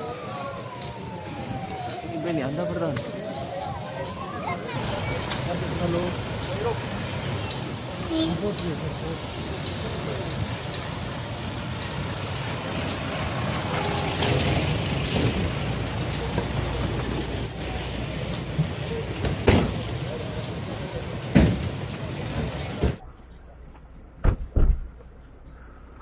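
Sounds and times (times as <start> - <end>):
voices: 0.0 - 23.0
vehicles rolling past: 0.0 - 24.2.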